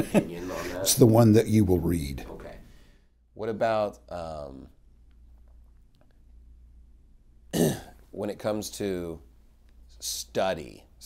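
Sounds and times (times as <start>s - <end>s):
man clearing his throat: 7.5s - 8.0s.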